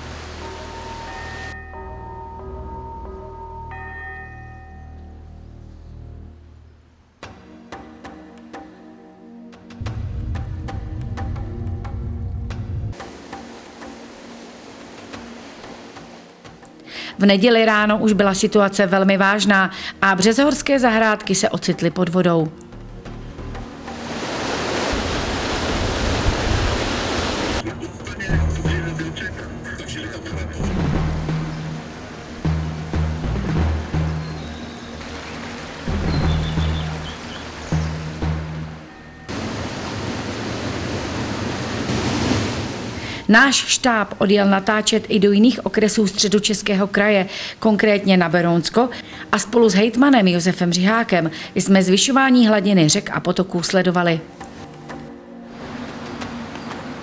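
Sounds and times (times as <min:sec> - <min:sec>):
floodwater rushing over weir: 0:00.0 - 0:01.6, 0:13.0 - 0:17.2, 0:23.4 - 0:27.7, 0:30.0 - 0:43.3
deep drum-like music: 0:09.8 - 0:13.5, 0:27.8 - 0:29.3, 0:30.4 - 0:34.3.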